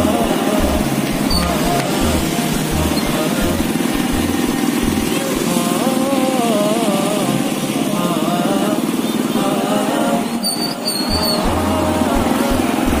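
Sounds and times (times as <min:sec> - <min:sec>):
person singing: 0:00.0 - 0:13.0.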